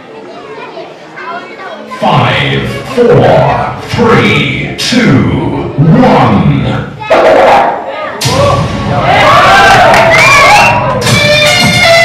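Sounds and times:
chatter of voices: 0:00.0 - 0:09.8.

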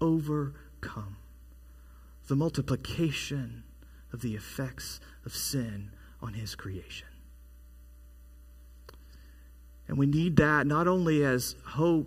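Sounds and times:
faint low electrical hum: 0:00.0 - 0:12.0.

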